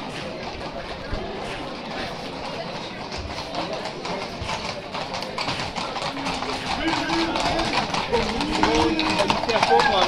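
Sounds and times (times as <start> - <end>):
crowd voices: 0.0 - 10.0
horse hooves clopping on asphalt: 0.0 - 10.0.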